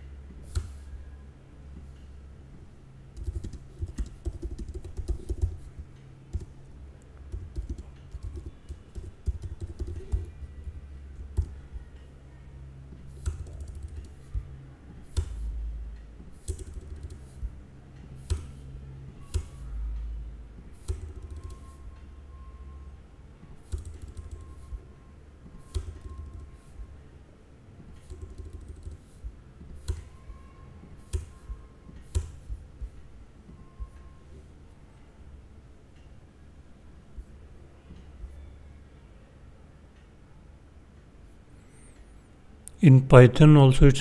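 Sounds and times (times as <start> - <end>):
low steady hum: 0.0 - 44.0
typing on computer keyboard: 3.1 - 6.6, 7.3 - 11.6, 13.1 - 14.4, 16.3 - 17.5, 18.2 - 18.6, 20.8 - 21.9, 23.6 - 24.8, 25.5 - 26.8, 27.9 - 30.1, 31.0 - 32.6.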